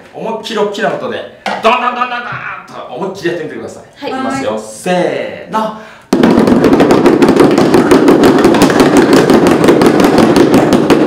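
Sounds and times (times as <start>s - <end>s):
bucket drums beaten with bottles: 6.1s - 11.0s.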